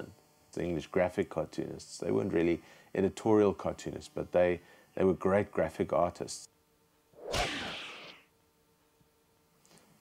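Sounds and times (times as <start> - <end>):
whoosh sound effect: 7.2 - 8.2.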